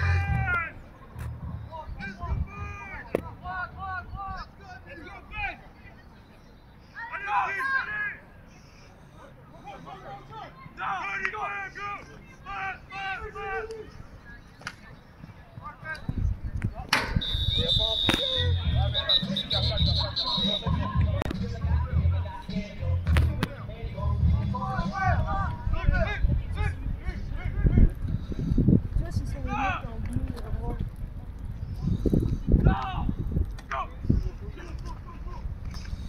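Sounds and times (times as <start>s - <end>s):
people calling out: 0.0s - 0.8s, 6.9s - 8.3s, 9.2s - 14.0s, 17.2s - 22.6s
referee's whistle blast: 17.0s - 20.9s.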